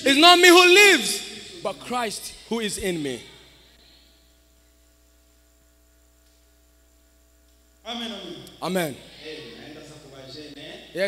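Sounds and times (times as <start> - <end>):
man speaking: 0.0 - 3.2, 7.9 - 11.0
electrical mains hum: 0.0 - 11.0.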